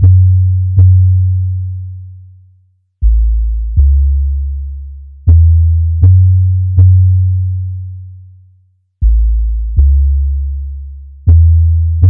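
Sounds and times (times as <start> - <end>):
deep sub bass notes: 0.0 - 2.4, 3.0 - 12.0.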